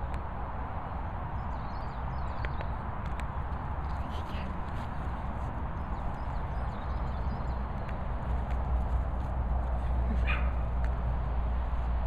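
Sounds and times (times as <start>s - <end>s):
wind rumble: 0.0s - 12.0s.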